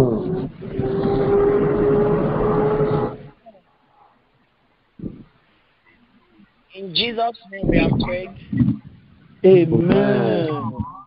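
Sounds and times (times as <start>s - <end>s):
voices praying over phone line: 3.3s - 11.0s
voice holding steady tone: 5.9s - 11.0s.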